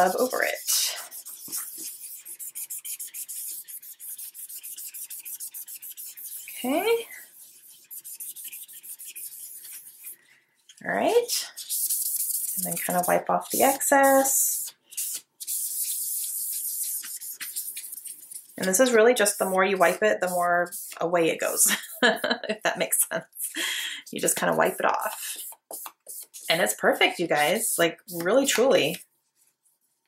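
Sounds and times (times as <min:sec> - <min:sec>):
paper towel rubbing glossy cover: 0:00.0 - 0:10.3, 0:11.1 - 0:22.4, 0:24.1 - 0:30.0.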